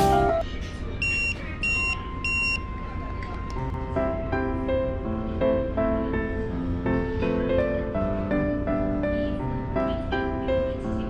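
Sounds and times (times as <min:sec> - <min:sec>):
guitar music: 0:00.0 - 0:00.4.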